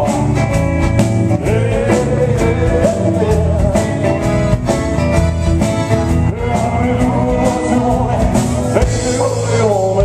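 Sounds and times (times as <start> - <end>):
man singing: 0.0 - 4.7, 5.9 - 10.0
drums: 0.0 - 10.0
electric guitars: 0.0 - 10.0
keyboards: 0.0 - 10.0.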